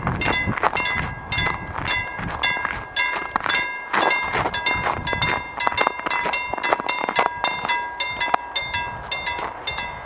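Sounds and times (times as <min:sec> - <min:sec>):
passing train rumble: 0:00.0 - 0:10.0
level crossing bell ringing: 0:00.2 - 0:10.0.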